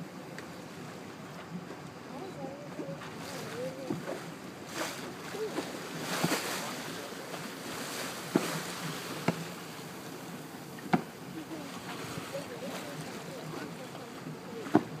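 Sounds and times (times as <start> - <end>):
sea waves: 0.0 - 15.0
wind: 0.0 - 15.0
faint voices: 2.0 - 8.5, 10.6 - 15.0.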